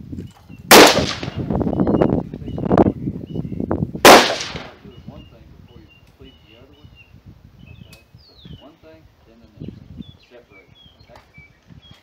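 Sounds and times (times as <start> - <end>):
faint gunshot: 0.7 - 1.4, 4.1 - 4.8
rifle shots: 0.7 - 1.4, 4.0 - 4.8.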